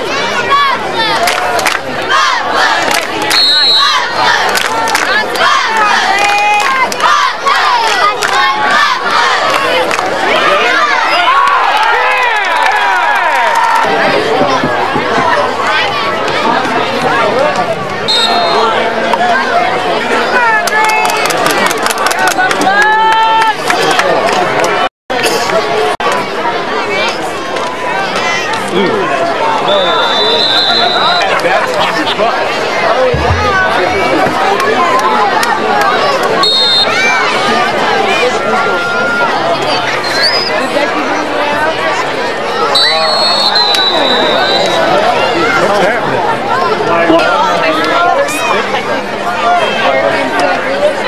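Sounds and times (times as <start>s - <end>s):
crowd yelling and cheering: 0.0s - 51.0s.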